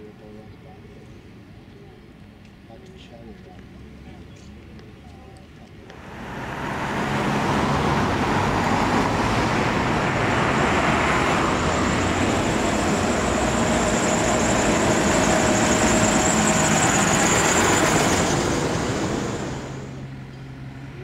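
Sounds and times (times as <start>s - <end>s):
traffic noise: 0.0s - 21.0s
car passing: 5.9s - 20.8s
bus engine driving past: 5.9s - 21.0s.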